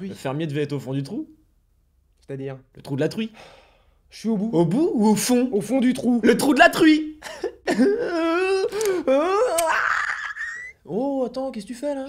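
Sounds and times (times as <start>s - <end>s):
man's strained wavering vocal sound: 7.7s - 10.8s.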